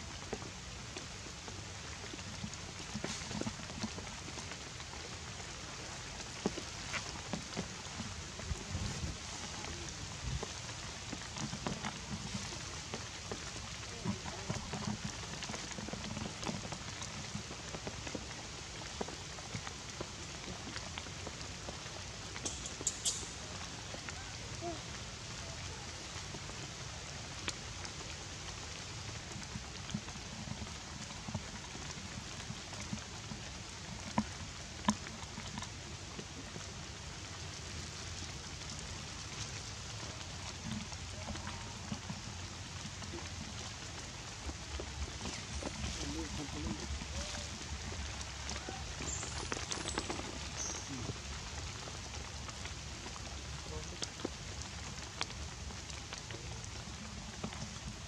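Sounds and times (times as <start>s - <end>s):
rain falling on leaves: 0.0s - 58.0s.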